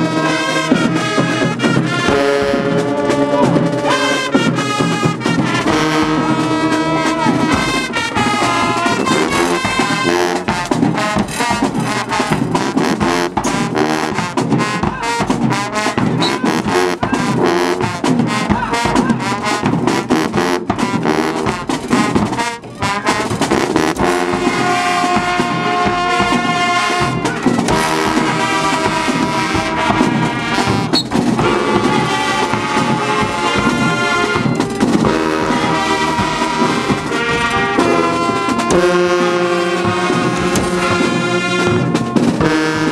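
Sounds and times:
marching band playing: 0.0s - 42.9s
percussion: 0.0s - 42.9s.

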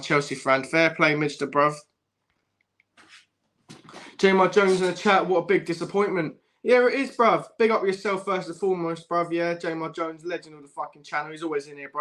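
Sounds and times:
faint short breath: 3.8s - 4.2s.

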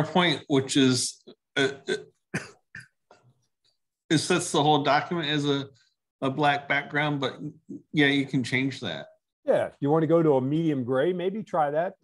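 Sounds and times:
man clearing his throat: 1.6s - 3.0s.

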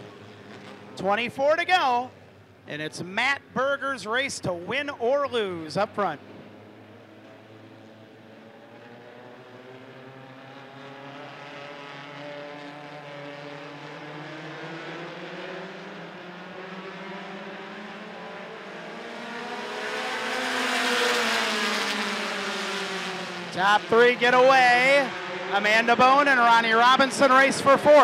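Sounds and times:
race car engines accelerating: 0.0s - 28.0s.

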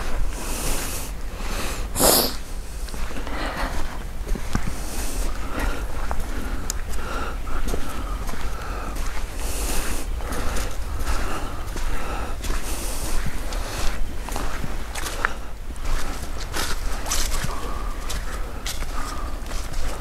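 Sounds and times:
footsteps on dead leaves: 0.0s - 20.0s
low rumble: 0.0s - 20.0s.

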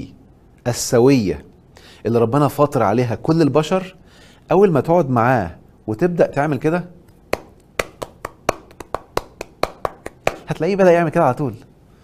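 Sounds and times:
man clapping hands: 7.3s - 10.6s.

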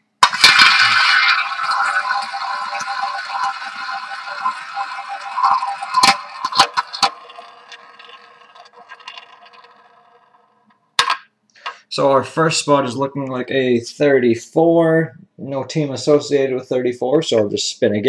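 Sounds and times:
roulette ball rattling whir: 0.2s - 11.2s.

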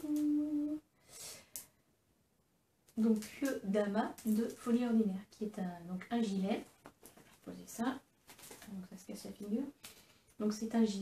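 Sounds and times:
woman humming: 0.0s - 0.9s
soft hiss: 0.0s - 11.0s.

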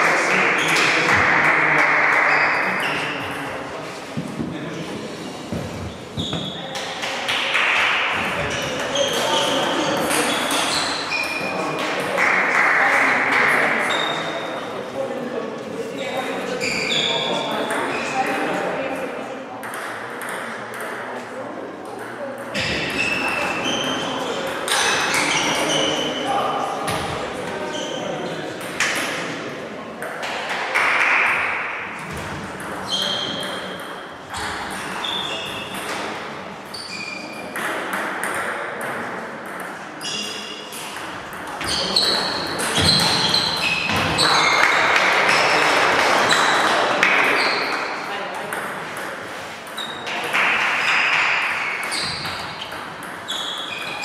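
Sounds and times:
table tennis balls pinging: 5.5s - 14.2s, 16.7s - 21.2s, 21.8s - 25.8s, 29.9s - 54.0s.

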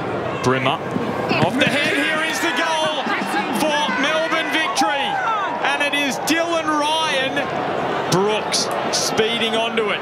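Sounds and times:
man commentating excitedly: 1.5s - 7.5s.

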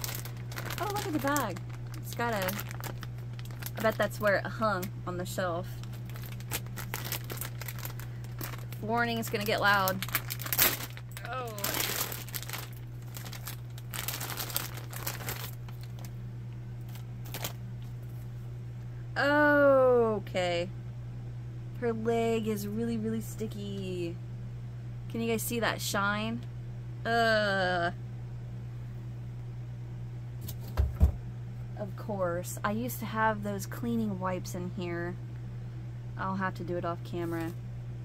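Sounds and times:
plastic bag crinkling: 0.0s - 4.9s, 5.7s - 16.2s, 16.8s - 18.2s
steady low hum: 0.0s - 38.0s
dull thumps on microphone: 30.6s - 31.2s.

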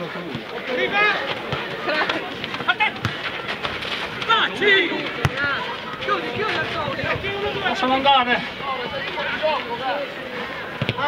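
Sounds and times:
players calling and shouting: 0.0s - 11.0s.

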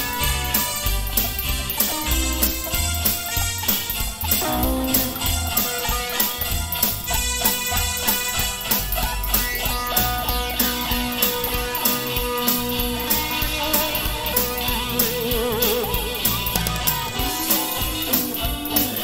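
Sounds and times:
bass: 0.0s - 19.0s
drum beat: 0.0s - 19.0s
electric guitar lead: 0.0s - 19.0s.

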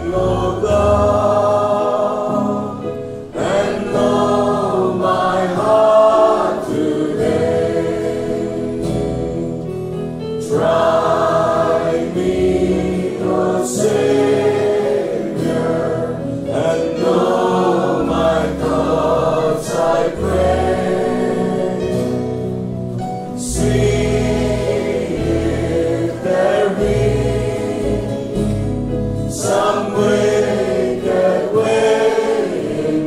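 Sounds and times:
choir singing gospel song: 0.0s - 33.0s
musical accompaniment: 0.0s - 33.0s.

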